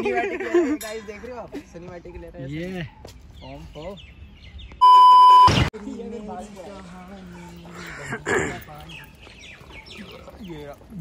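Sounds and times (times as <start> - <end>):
loud electronic beep: 4.8 - 5.7.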